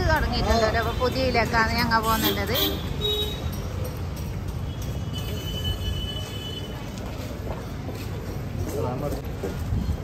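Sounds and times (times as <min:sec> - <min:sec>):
street traffic rumble: 0:00.0 - 0:10.0.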